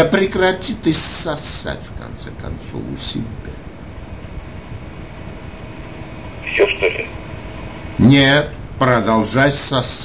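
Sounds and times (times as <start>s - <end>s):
telephone line hiss and hum: 2.8s - 10.0s.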